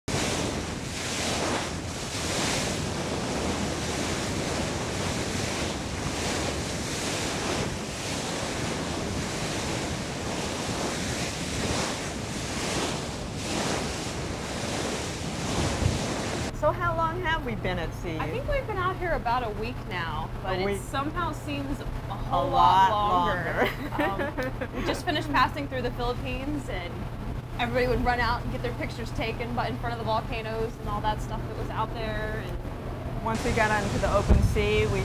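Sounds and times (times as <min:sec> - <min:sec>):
bow wave rushing against hull: 0:00.1 - 0:16.5, 0:32.6 - 0:35.0
wind buffeting microphone: 0:00.1 - 0:22.1, 0:23.9 - 0:35.0.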